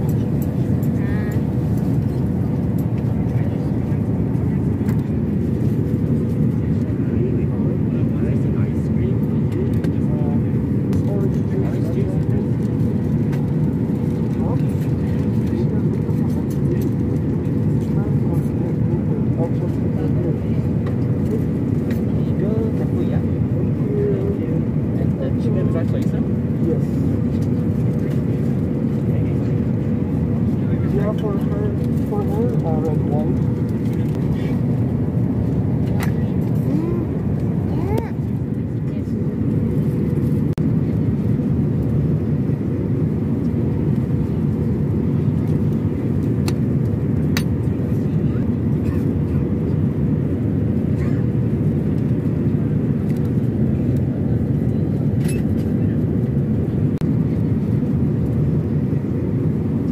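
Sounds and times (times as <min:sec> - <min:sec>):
airliner engine and air rumble: 0:00.0 - 0:59.9.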